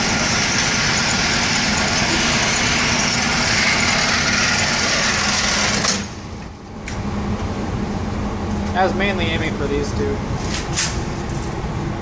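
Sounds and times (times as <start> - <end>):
target carrier motor humming: 0.0 - 10.4.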